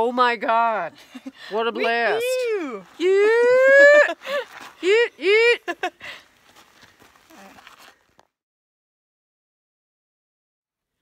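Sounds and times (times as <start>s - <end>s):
women laughing: 1.0s - 6.2s
voices: 1.6s - 5.7s.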